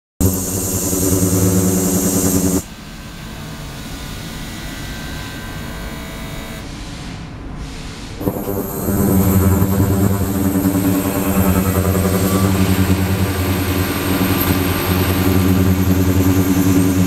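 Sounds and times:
ultrasonic cleaner buzzing: 0:00.2 - 0:02.6, 0:08.2 - 0:17.0.

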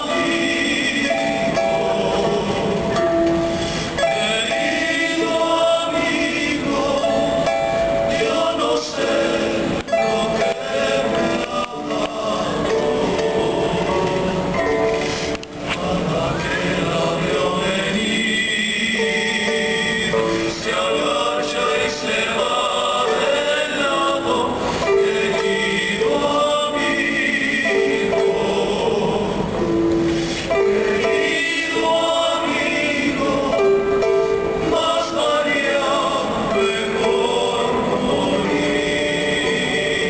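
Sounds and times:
voices singing together: 0:00.0 - 0:40.0.

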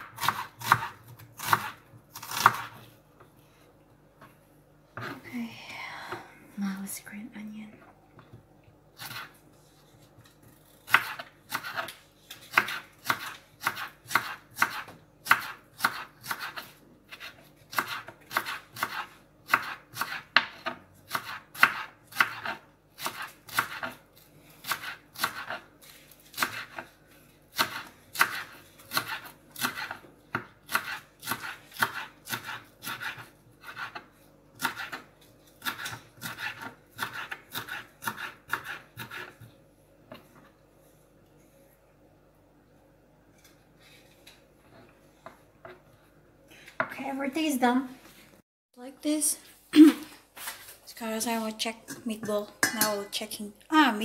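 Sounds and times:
knife chopping on wooden board: 0:00.0 - 0:02.8, 0:10.8 - 0:24.0, 0:24.6 - 0:25.6, 0:26.3 - 0:26.9, 0:27.5 - 0:39.5.

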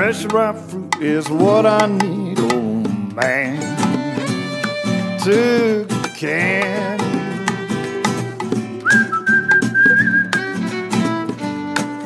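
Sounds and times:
high whistled note: 0:08.8 - 0:10.4.

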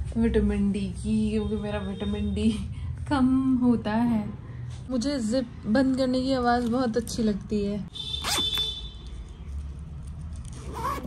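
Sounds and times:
zipper being pulled shut: 0:08.2 - 0:08.6, 0:10.5 - 0:11.0.

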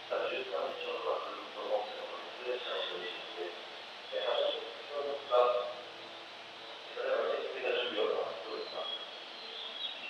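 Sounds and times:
man speaking: 0:04.2 - 0:05.6.

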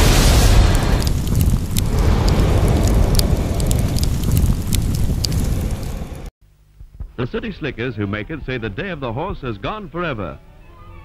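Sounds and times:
fireball roar: 0:00.0 - 0:06.3
sharp crackles: 0:00.0 - 0:06.3.

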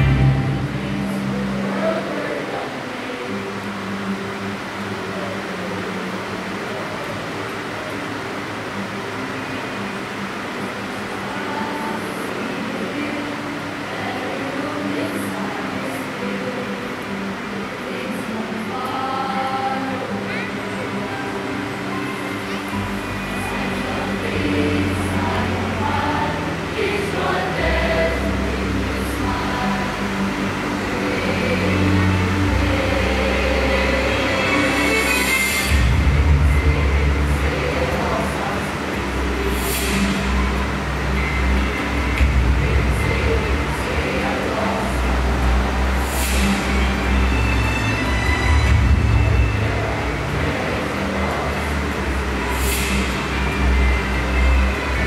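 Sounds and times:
heavy low hum: 0:00.0 - 0:02.6, 0:22.8 - 0:55.0
children's choir singing: 0:00.0 - 0:55.0.

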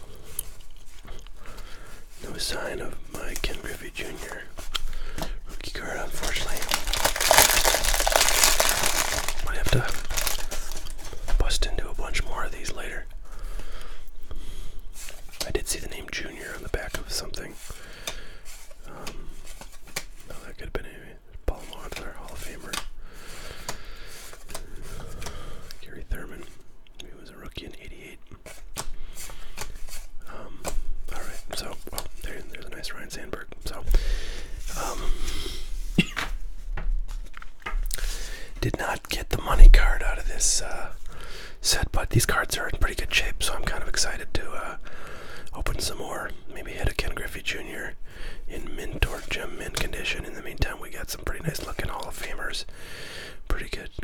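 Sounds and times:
cardboard cards rustling: 0:00.2 - 0:12.2, 0:16.2 - 0:20.4, 0:21.5 - 0:25.8, 0:28.4 - 0:32.7.

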